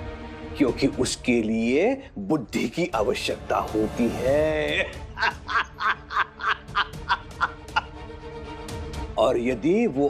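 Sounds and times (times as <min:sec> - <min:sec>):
background music: 0:00.0 - 0:10.0
man laughing mockingly: 0:04.7 - 0:08.0.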